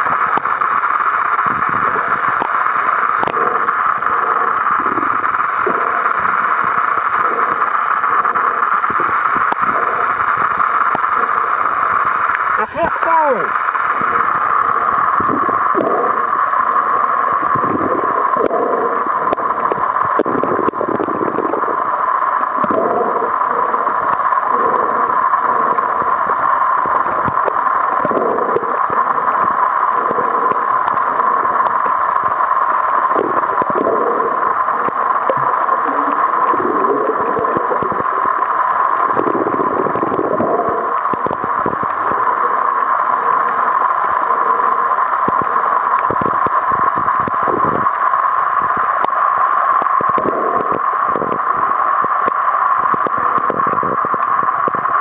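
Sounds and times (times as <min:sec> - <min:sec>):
gurgling rushing water: 0:00.0 - 0:55.0.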